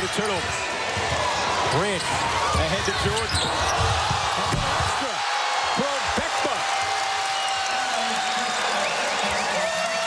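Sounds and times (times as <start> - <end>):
crowd cheering and shouting: 0.0 - 10.0
crowd noise: 0.0 - 10.0.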